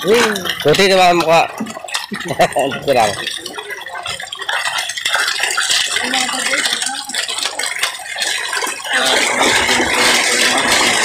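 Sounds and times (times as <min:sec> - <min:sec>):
fish thrashing and splashing: 0:00.0 - 0:11.0.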